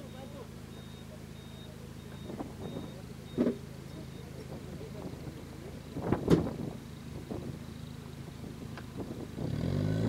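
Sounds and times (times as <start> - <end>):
off-road vehicle engine: 0.0 - 10.0.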